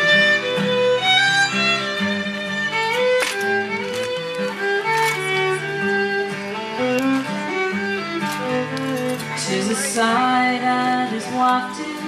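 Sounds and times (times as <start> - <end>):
fiddle playing slow melody: 0.0 - 12.0
strummed acoustic guitar: 0.0 - 12.0.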